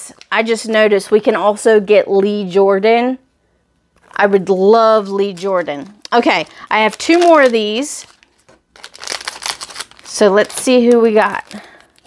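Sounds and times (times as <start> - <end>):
packet crinkling: 5.0 - 12.0.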